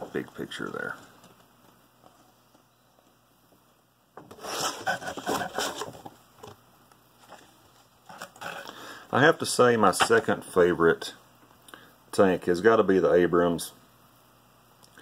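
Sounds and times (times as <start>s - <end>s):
paper rustling: 4.3s - 6.2s.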